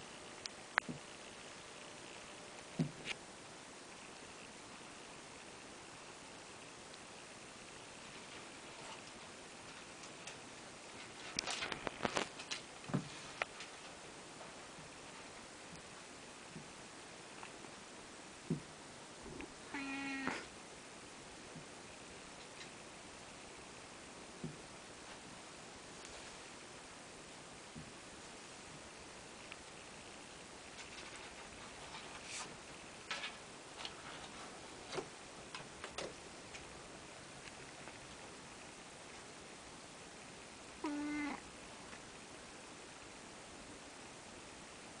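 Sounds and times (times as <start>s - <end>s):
cat meowing: 19.7s - 20.5s, 40.8s - 41.4s.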